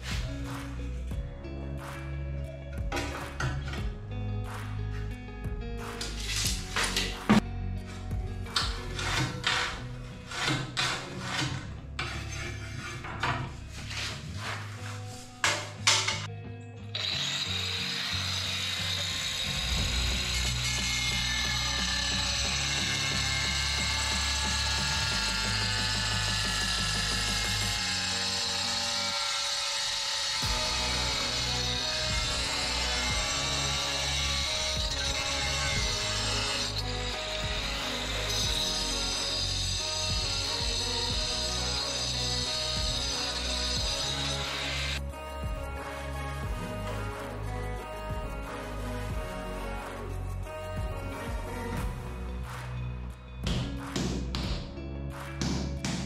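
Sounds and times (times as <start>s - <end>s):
angle grinder cutting tile: 5.8s - 16.3s, 16.9s - 45.1s.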